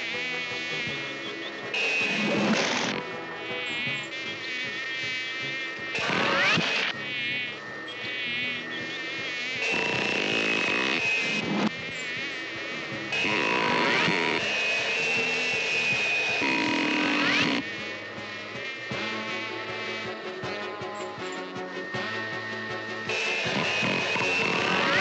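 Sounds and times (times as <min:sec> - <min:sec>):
vacuum cleaner whine: 0:00.0 - 0:25.0
cartoon fly buzzing: 0:13.2 - 0:17.6.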